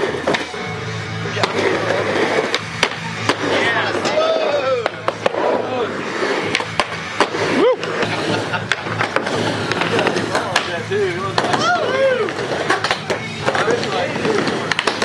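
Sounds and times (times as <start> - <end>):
music with low beat: 0.0 - 3.9
skateboard wheels rolling: 0.0 - 15.0
skateboard clacking on ramp: 4.8 - 5.4, 8.6 - 15.0.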